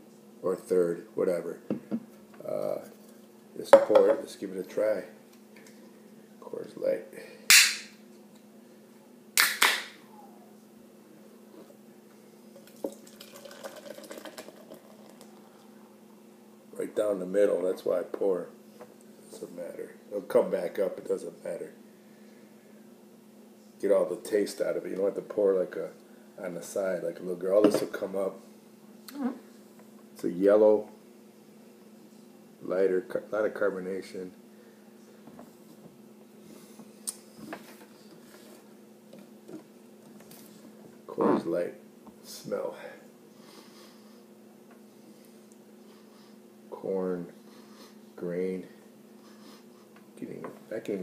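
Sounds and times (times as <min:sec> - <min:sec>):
faint steady hum: 0:00.0 - 0:51.0
beer glugging into glass: 0:12.6 - 0:15.2.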